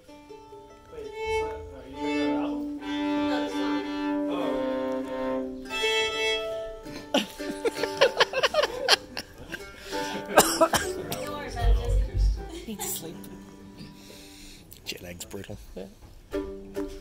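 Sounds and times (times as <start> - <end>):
fiddle bowing held notes: 0.0 - 8.2
people laughing: 6.9 - 13.2.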